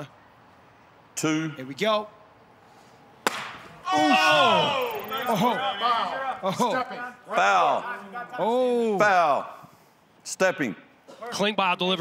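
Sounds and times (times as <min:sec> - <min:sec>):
open-hand slap to the face: 0:03.2 - 0:03.6.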